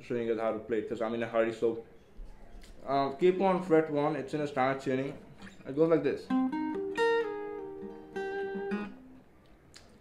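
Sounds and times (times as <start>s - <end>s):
acoustic guitar picking single notes: 5.3s - 9.3s.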